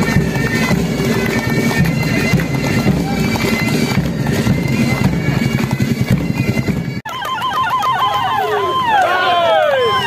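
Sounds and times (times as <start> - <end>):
police siren warbling and wailing: 7.1 - 10.0.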